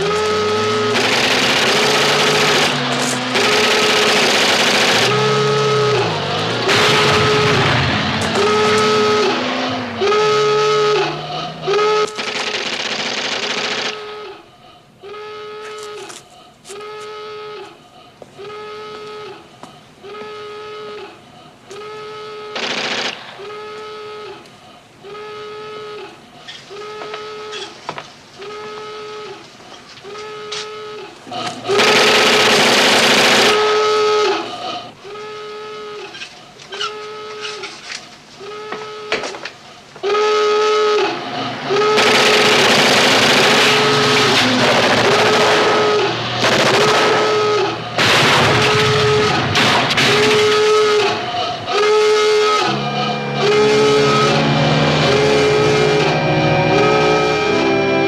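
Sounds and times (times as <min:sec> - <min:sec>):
radio signal tone beeping: 0:04.9 - 0:12.3, 0:18.4 - 0:22.8, 0:23.4 - 0:27.8, 0:50.4 - 0:58.0.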